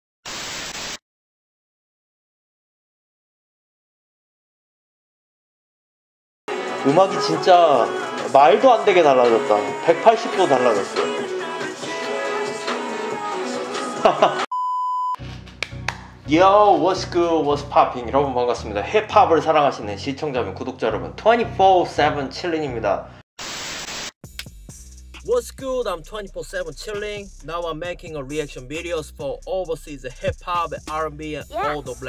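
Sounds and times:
hissing static burst: 0.2 - 1.0, 23.4 - 24.2
high electronic beep: 14.5 - 15.2.

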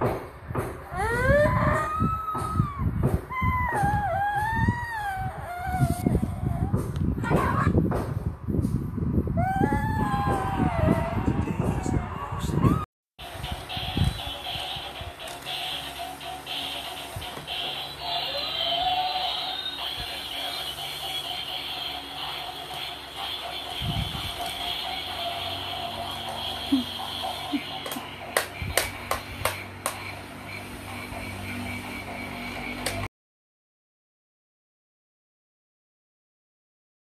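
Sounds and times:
quiet music with high tone: 13.2 - 27.5
children's song through small speaker: 13.2 - 28.8.

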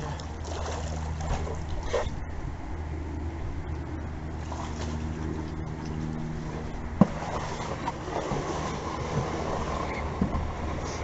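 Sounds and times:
steady low hum: 0.0 - 11.0
water swishing: 0.0 - 11.0.

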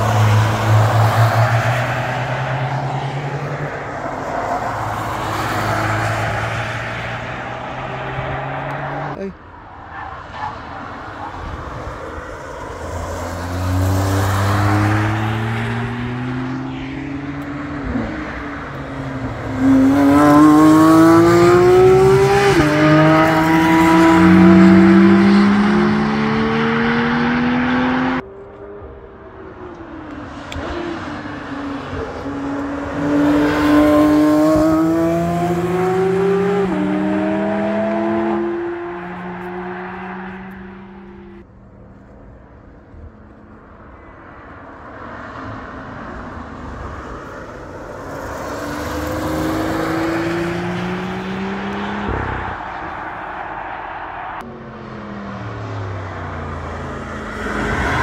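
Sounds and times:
sports cars accelerating: 0.0 - 41.5, 44.9 - 58.0
distant car engines: 0.0 - 58.0.

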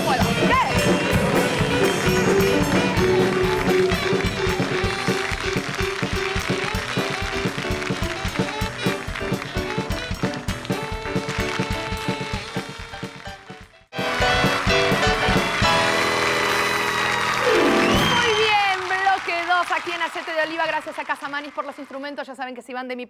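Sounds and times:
steady drum beat: 0.0 - 16.8
upbeat band music: 0.0 - 22.0.

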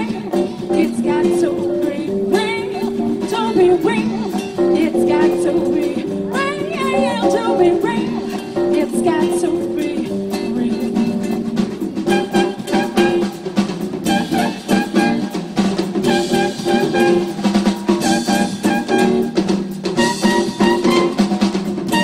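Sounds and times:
upright bass: 0.0 - 13.3
congas: 0.0 - 22.0
drum kit: 0.0 - 22.0.

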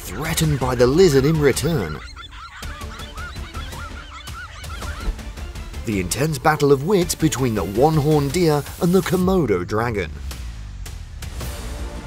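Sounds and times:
dogs barking and yelping: 0.0 - 5.5.

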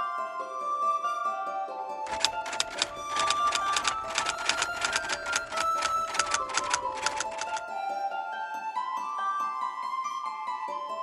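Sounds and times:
typewriter keystroke clicks: 2.1 - 7.6.

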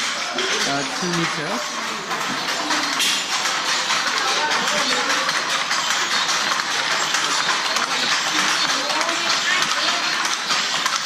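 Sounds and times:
faint voices: 0.0 - 11.0
wooden hand looms clacking: 0.0 - 11.0.

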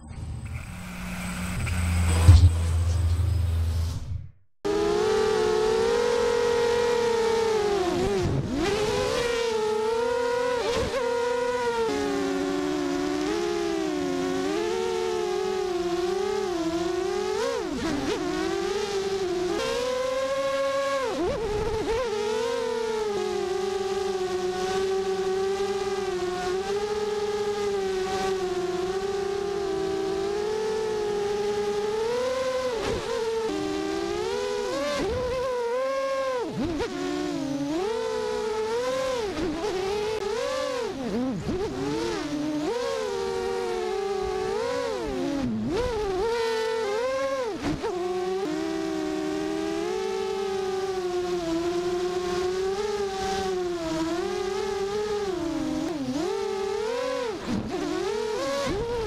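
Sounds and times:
quadcopter motors whining: 0.0 - 3.9.

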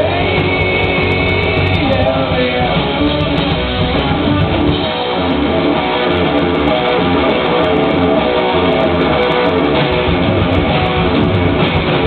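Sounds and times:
bass: 0.0 - 12.0
drums: 0.0 - 12.0
electric guitars strumming: 0.0 - 12.0.

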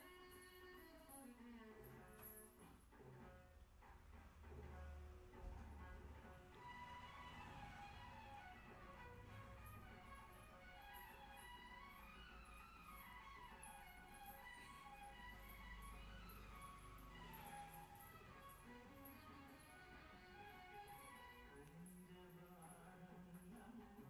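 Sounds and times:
faint music from television: 0.0 - 24.0.

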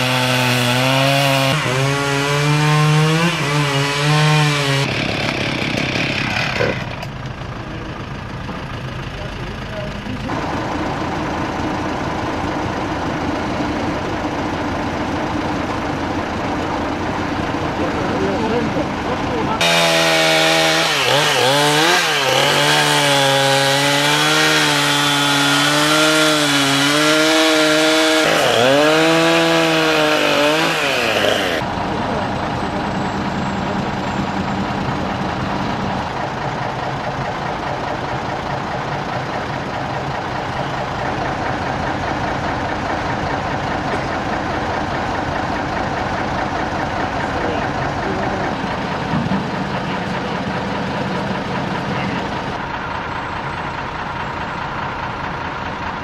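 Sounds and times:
chainsaw cutting wood: 0.0 - 7.1, 19.6 - 31.6
truck engine idling: 4.2 - 56.0.

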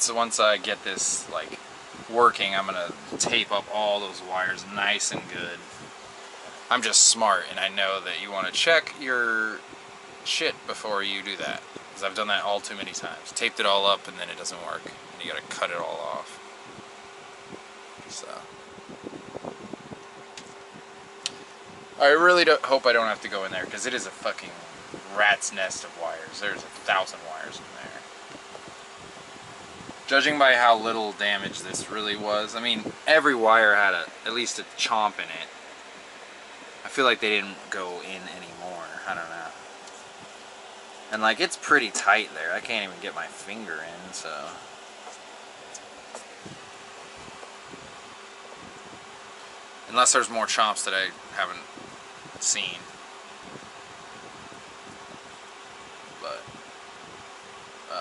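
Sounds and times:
fan humming: 0.0 - 58.0.

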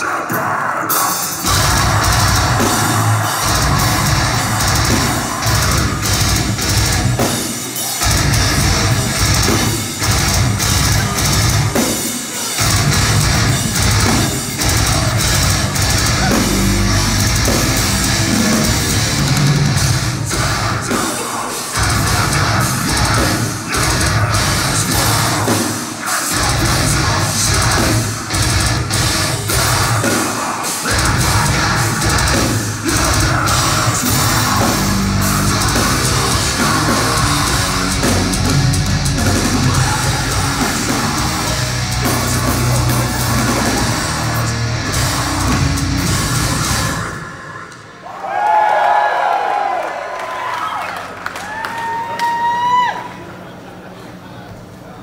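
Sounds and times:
screamed vocals: 0.0 - 7.2
pounding drum kit: 0.0 - 47.6
distorted electric guitars: 0.0 - 48.0
bass guitar: 1.4 - 7.4, 8.0 - 11.8, 12.6 - 21.0, 21.8 - 25.6, 26.3 - 30.1, 30.9 - 47.2.

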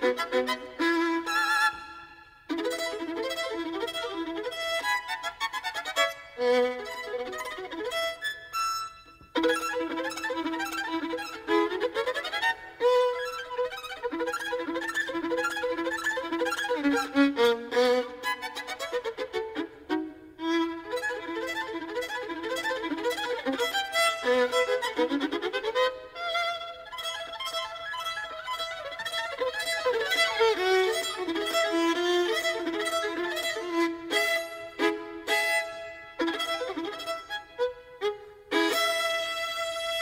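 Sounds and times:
fast classical violin: 0.0 - 40.0.

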